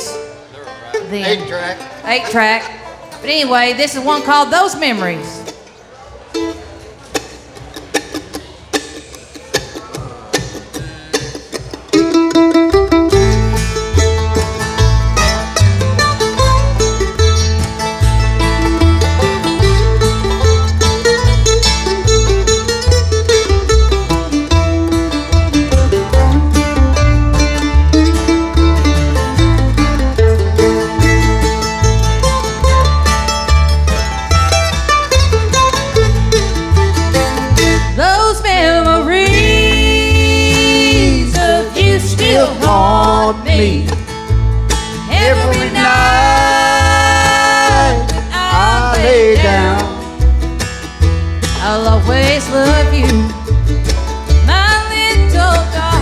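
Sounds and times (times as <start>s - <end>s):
bluegrass band playing: 0.0s - 56.0s
upright bass beat: 7.2s - 56.0s.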